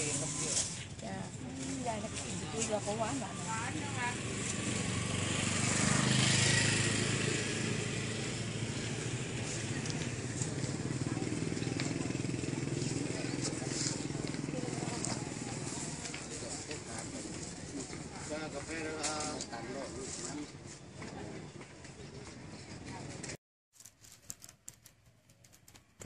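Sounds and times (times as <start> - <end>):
motorcycle engine running: 0.0 - 20.4
street noise: 0.0 - 23.4.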